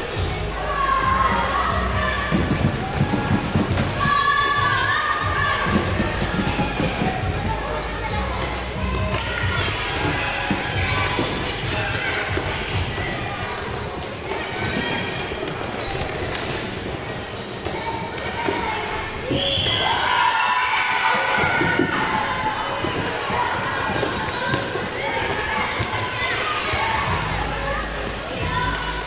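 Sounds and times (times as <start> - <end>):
children shouting: 0.4 - 13.8, 17.6 - 29.0.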